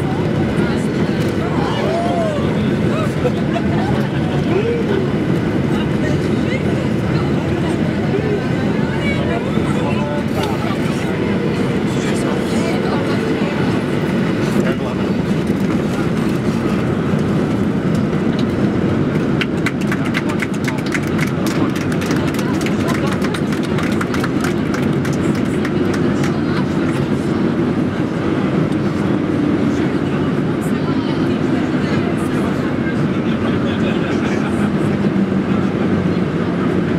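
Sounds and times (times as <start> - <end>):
aircraft cabin rumble: 0.0 - 36.9.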